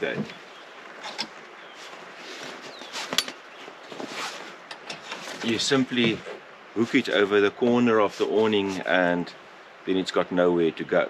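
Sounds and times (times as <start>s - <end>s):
rope and tent canvas rustling: 0.0s - 9.2s.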